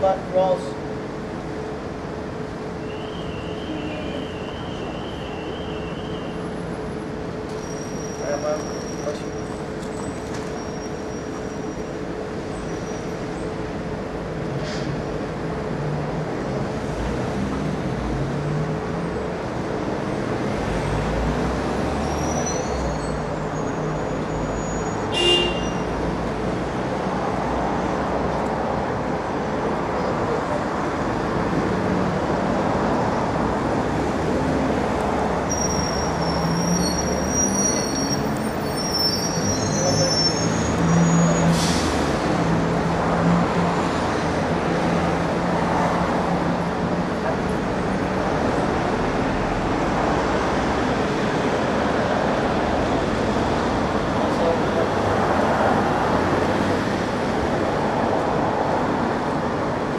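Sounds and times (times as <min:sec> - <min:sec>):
road traffic hum: 0:00.0 - 0:59.9.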